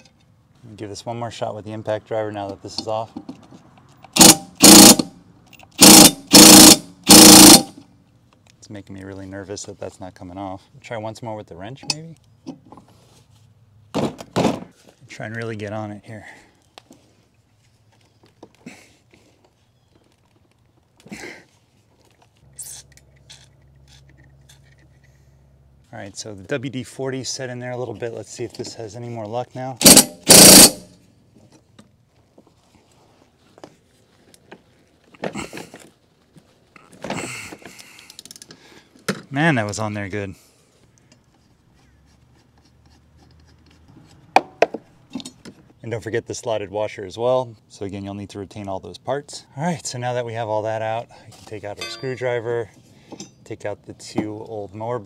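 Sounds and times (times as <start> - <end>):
wrench scraping: 22.6 - 25.2, 29.8 - 30.9, 41.1 - 44.3.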